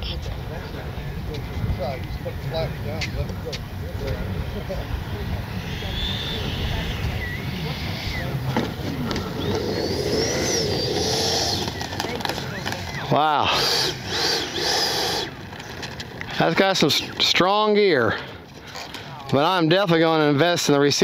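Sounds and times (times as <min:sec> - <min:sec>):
electric ducted fan whining: 0:00.0 - 0:19.6.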